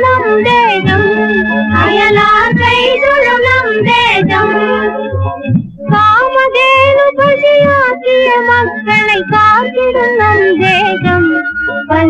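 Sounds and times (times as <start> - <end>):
woman singing with vibrato: 0.0 - 5.1, 5.9 - 12.0
steady drum beat: 0.5 - 8.0, 10.3 - 11.4.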